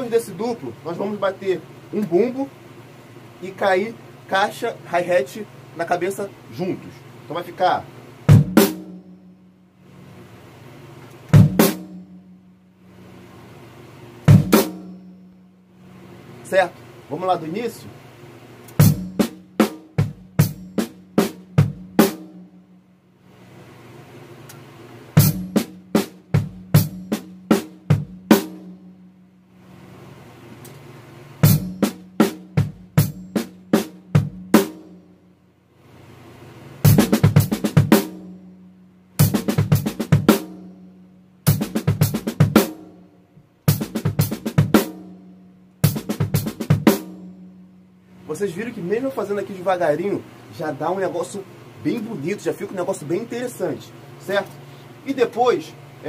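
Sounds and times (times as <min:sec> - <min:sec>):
bass drum: 0:08.3 - 0:09.1, 0:11.4 - 0:12.4, 0:18.8 - 0:22.4, 0:25.2 - 0:28.8, 0:31.4 - 0:34.9, 0:36.9 - 0:38.3, 0:39.2 - 0:40.7, 0:41.5 - 0:42.9, 0:43.7 - 0:45.2, 0:45.8 - 0:47.4.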